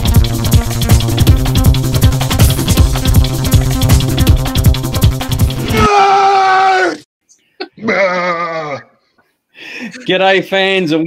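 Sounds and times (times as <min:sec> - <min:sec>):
man yelling angrily: 0:05.7 - 0:07.0.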